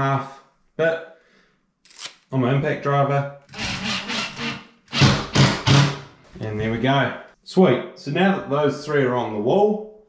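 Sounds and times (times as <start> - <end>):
impact driver hammering screw: 3.5 - 6.1.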